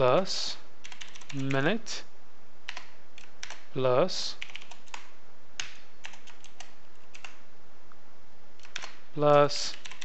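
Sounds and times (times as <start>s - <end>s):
background hiss: 0.0s - 10.0s
computer keyboard typing: 0.8s - 1.6s, 2.7s - 3.7s, 4.4s - 7.4s, 8.6s - 9.0s, 9.6s - 10.0s.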